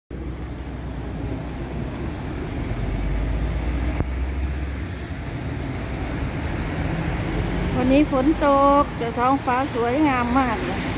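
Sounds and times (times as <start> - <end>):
traffic on wet street: 0.1 - 10.9.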